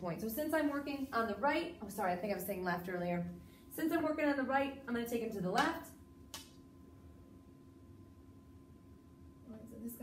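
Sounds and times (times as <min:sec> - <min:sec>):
thin steady hum: 0:00.0 - 0:10.0.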